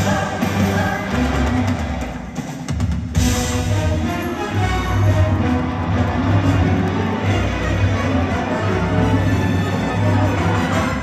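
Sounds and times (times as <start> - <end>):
live rock band with orchestra: 0.0 - 11.0.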